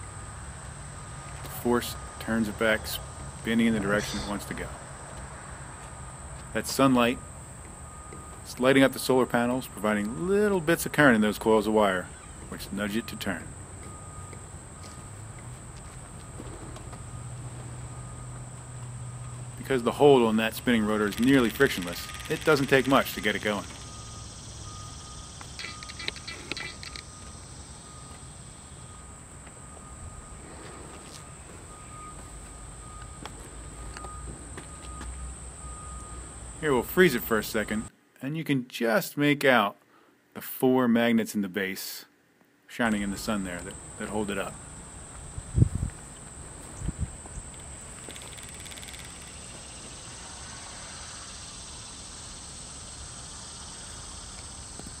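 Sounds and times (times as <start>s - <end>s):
high insect drone: 0.0s - 37.9s, 42.9s - 55.0s
short chirps: 3.8s - 4.6s.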